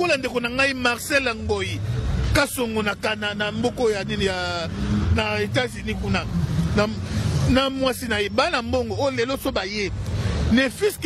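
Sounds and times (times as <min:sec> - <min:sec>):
man speaking loudly: 0:00.0 - 0:11.0.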